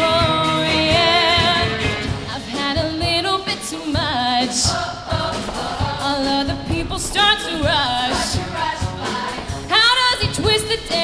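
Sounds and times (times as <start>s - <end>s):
woman singing into microphone: 0.0s - 4.8s, 5.4s - 11.0s
live band accompaniment: 0.0s - 11.0s
steady drum beat: 0.0s - 11.0s.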